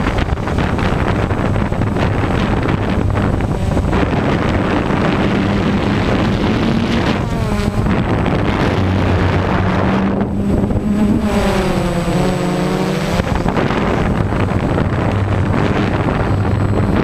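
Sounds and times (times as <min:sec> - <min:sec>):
drone motors and propellers: 0:00.0 - 0:17.0
wind buffeting microphone: 0:00.0 - 0:17.0.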